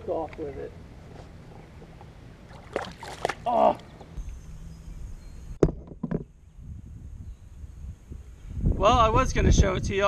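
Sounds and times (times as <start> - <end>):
wind rumble on microphone: 4.2 - 10.0
sharp knocks: 5.6 - 6.3.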